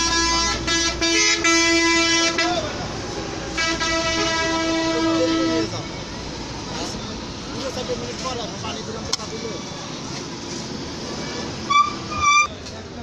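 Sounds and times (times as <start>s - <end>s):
vehicle horn blasts: 0.0s - 2.6s, 3.6s - 5.7s, 11.6s - 12.6s
background chatter: 2.0s - 13.0s.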